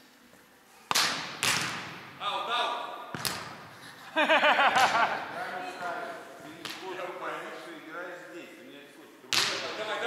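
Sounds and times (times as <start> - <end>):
volleyball struck with echo: 0.9 - 2.2, 3.1 - 3.6.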